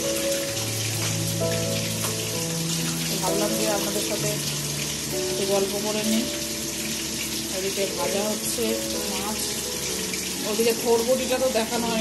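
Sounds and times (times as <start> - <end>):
tap water running over leaves: 0.0 - 12.0.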